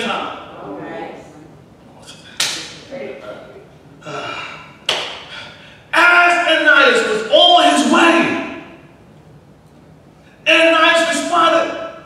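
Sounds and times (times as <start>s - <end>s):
sharp crack ringing in a hall: 4.8s - 5.6s.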